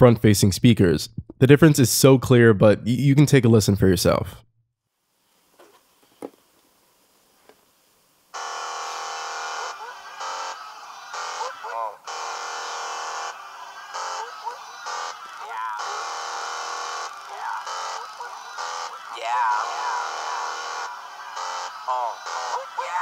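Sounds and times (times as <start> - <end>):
rap song on phone speaker: 8.4 - 23.0.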